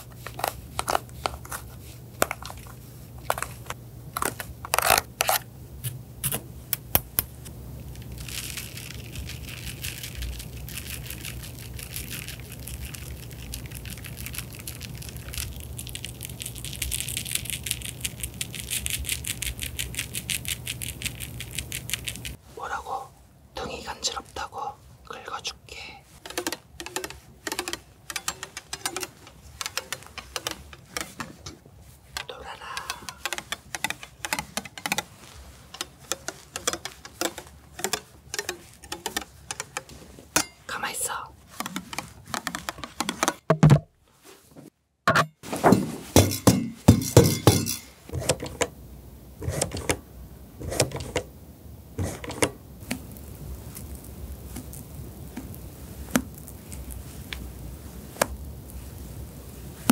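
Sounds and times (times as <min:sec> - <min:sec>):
eyeshadow powder crackling: 0:07.8 - 0:22.4, 0:23.9 - 0:43.2, 0:52.8 - 0:59.9
pump bottle clicks and squishes: 0:26.2 - 0:31.4, 0:32.1 - 0:35.1, 0:35.7 - 0:39.9.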